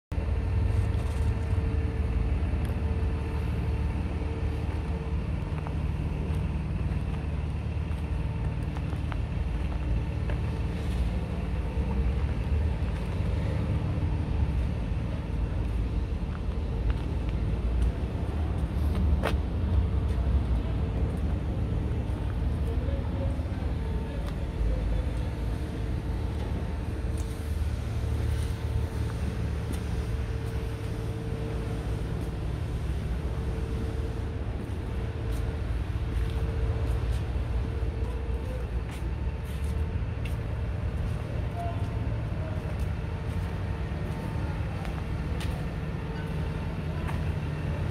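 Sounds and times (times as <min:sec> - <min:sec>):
vehicle engine rumble: 0:00.0 - 0:47.9.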